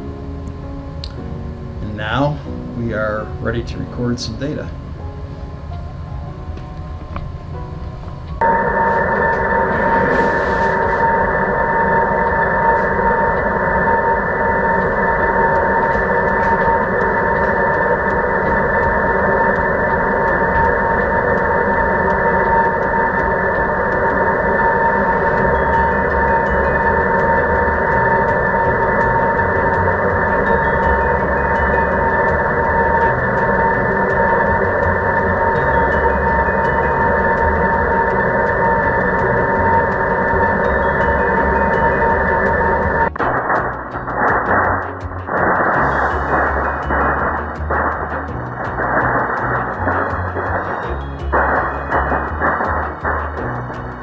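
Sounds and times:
steady tone: 0:00.0 - 0:54.0
vibration shaker rushing noise: 0:08.4 - 0:54.0.

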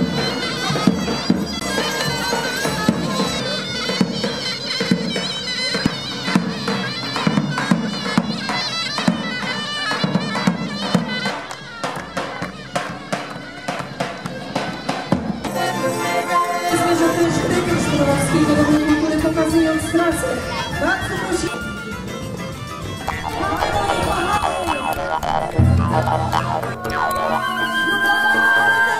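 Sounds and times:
reed wind instrument melody: 0:00.0 - 0:28.9
held drone: 0:23.0 - 0:28.2
bass drum strikes: 0:25.3 - 0:27.0.

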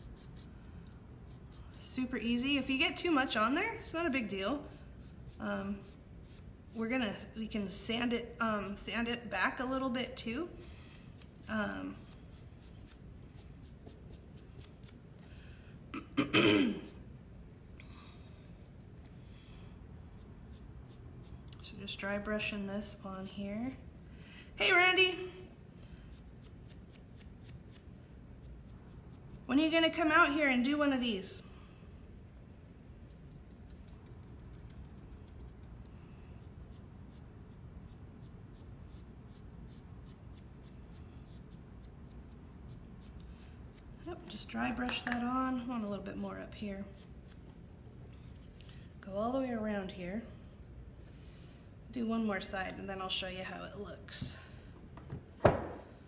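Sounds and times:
low steady hum: 0:00.0 - 0:56.0
paintbrush bristles scratching: 0:04.5 - 0:15.0, 0:20.1 - 0:23.8, 0:26.1 - 0:29.8, 0:33.0 - 0:35.8, 0:36.4 - 0:47.5
woman clearing her throat: 0:15.9 - 0:16.9.

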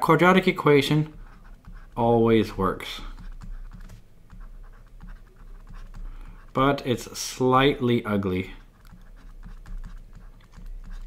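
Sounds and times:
stylus tapping and scratching on tablet: 0:00.0 - 0:11.0.

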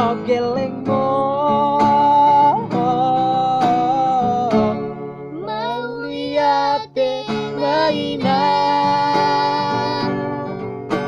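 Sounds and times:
strummed acoustic guitar: 0:00.0 - 0:11.0
young men singing: 0:05.5 - 0:10.1.

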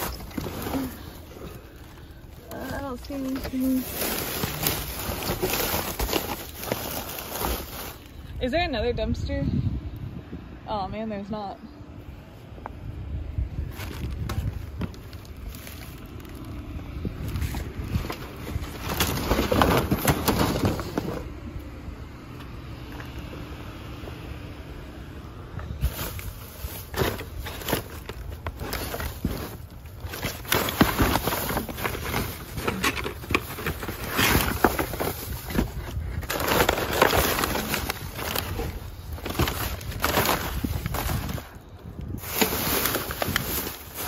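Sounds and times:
plastic bags rustling: 0:00.0 - 0:08.7, 0:13.5 - 0:21.3, 0:25.6 - 0:44.0
steady low rumble: 0:00.0 - 0:44.0.

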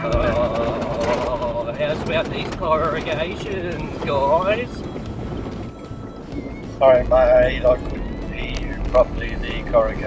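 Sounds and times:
vehicle rumbling on gravel road: 0:00.0 - 0:10.0.

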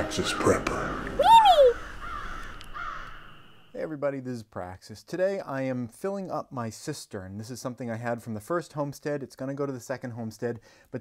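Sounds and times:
rising and falling vocal call: 0:00.3 - 0:03.4.

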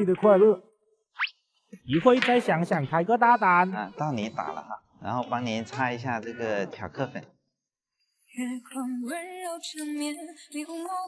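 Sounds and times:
woman singing: 0:08.3 - 0:11.0.

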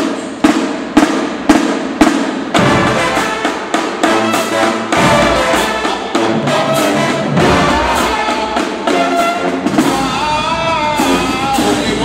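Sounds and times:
marching drumline hits: 0:00.0 - 0:12.0
horns sustained notes: 0:02.6 - 0:12.0.

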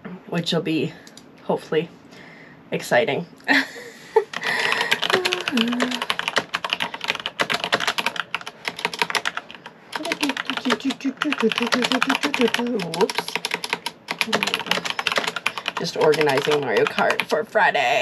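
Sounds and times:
fast typing on keyboard: 0:04.3 - 0:17.5.

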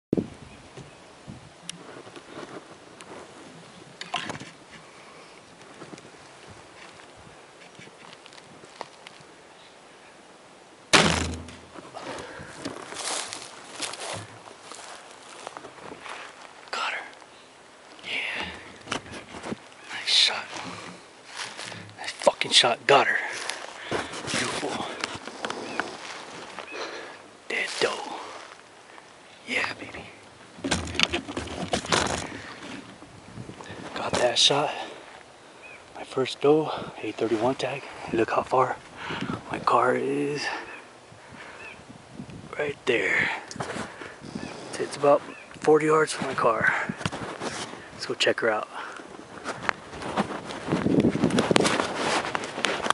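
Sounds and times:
wind noise on microphone: 0:00.1 - 0:04.8, 0:05.6 - 0:08.7, 0:29.8 - 0:34.1, 0:38.1 - 0:39.7, 0:41.0 - 0:48.0, 0:49.1 - 0:52.9
faint outdoor background: 0:00.1 - 0:52.9
rustling crunch in dry grass: 0:04.4 - 0:09.4, 0:11.0 - 0:35.3, 0:43.6 - 0:48.0, 0:49.0 - 0:52.9
microphone rubbing: 0:11.0 - 0:16.2, 0:18.1 - 0:22.2, 0:29.6 - 0:34.2, 0:43.6 - 0:45.5, 0:46.2 - 0:47.9, 0:49.2 - 0:52.9.

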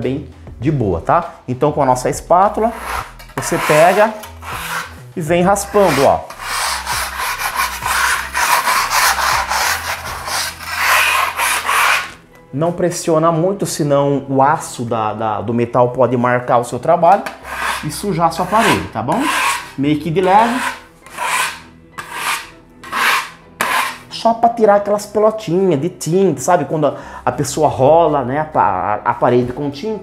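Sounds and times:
spatula scraping a wall: 0:02.6 - 0:12.2, 0:17.2 - 0:24.2.

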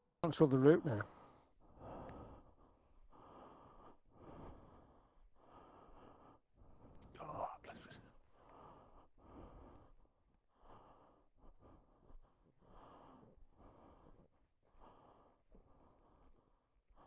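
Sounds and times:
soft breathing: 0:00.4 - 0:17.0.

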